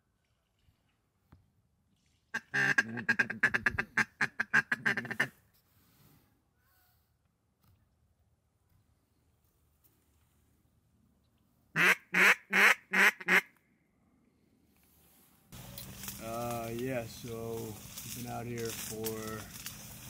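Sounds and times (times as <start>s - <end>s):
duck call quacks: 2.4s - 5.3s, 11.8s - 13.5s.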